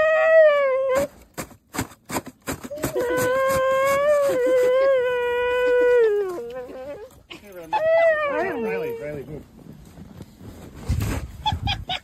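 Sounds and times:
dog howling: 0:00.0 - 0:01.1, 0:02.8 - 0:07.1, 0:07.7 - 0:09.0.

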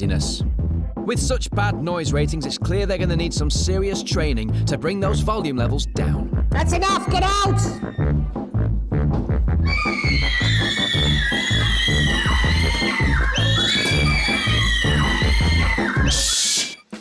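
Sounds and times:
music with bass beat: 0:00.0 - 0:09.7
children screaming: 0:09.7 - 0:16.8.

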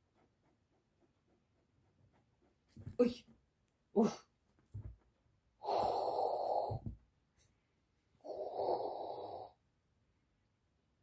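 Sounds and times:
long breathy hisses: 0:05.6 - 0:06.9, 0:08.2 - 0:09.6.

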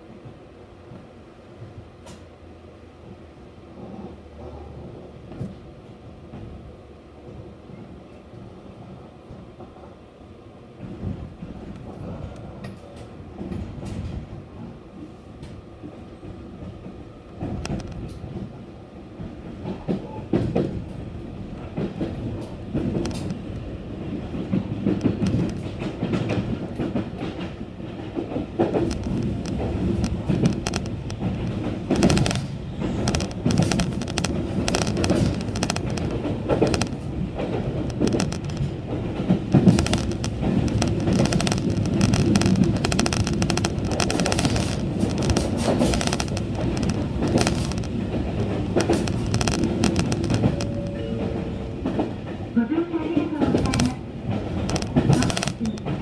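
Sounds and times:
clickety-clack of train wheels: 0:00.0 - 0:02.4, 0:03.0 - 0:10.0, 0:10.7 - 0:56.0
train rumble: 0:00.0 - 0:56.0.

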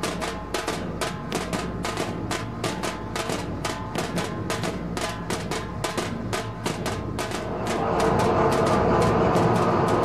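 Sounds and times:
fast steady drumming: 0:00.0 - 0:10.0
sustained instrument tones: 0:07.3 - 0:10.0.

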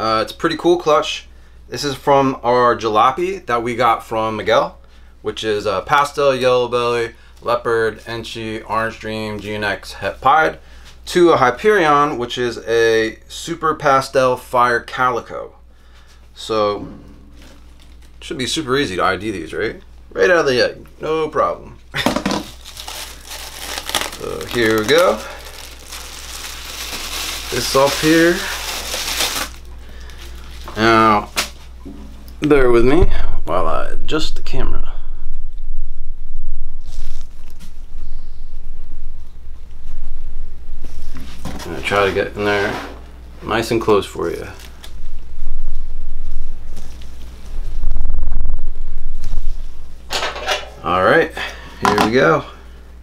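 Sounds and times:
low steady hum: 0:00.0 - 0:53.0
gloved hands crinkling and rustling: 0:22.4 - 0:31.8, 0:46.5 - 0:47.8.

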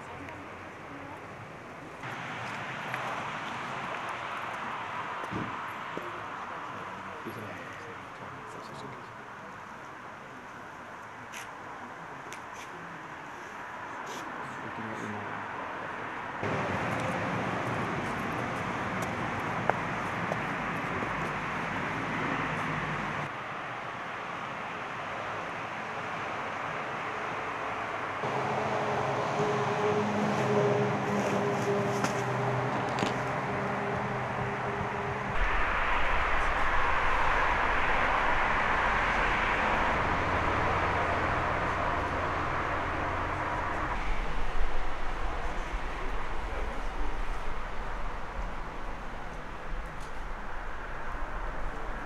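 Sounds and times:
traffic-like rumble: 0:00.0 - 0:52.0
deeper rumble: 0:32.3 - 0:52.0
steady drone humming: 0:32.4 - 0:52.0.

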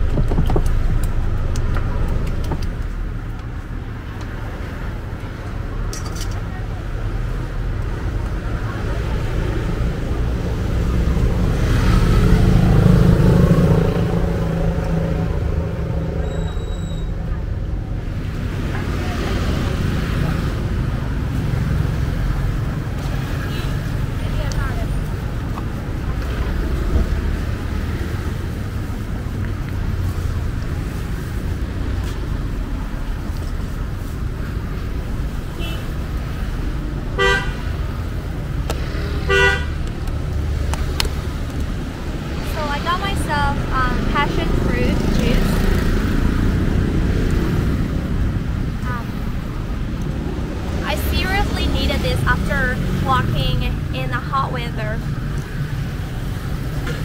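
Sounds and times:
street traffic rumble: 0:00.0 - 0:57.0
vehicle horn toots: 0:37.2 - 0:37.6, 0:39.2 - 0:39.7.

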